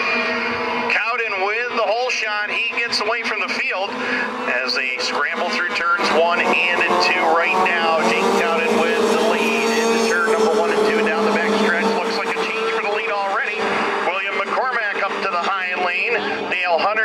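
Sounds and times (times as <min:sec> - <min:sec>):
race announcer's voice: 0:00.0 - 0:17.0
snowmobile engines droning: 0:00.0 - 0:17.0.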